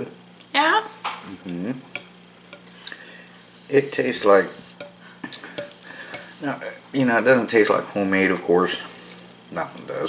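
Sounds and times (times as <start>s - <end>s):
steady low hum: 0.0s - 10.0s
metal spoon clicking on plate: 2.0s - 2.7s, 4.8s - 5.0s.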